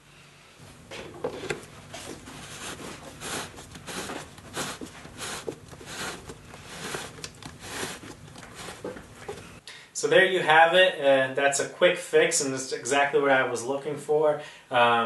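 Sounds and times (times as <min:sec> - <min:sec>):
plastic thread scraping: 0:01.3 - 0:09.6.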